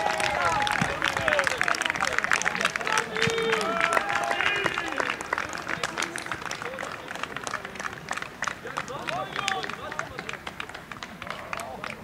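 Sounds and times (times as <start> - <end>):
sharp irregular claps: 0.0 - 12.0.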